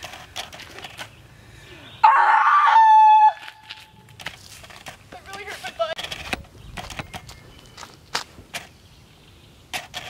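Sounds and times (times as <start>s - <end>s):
loud harsh cry: 2.0s - 3.4s.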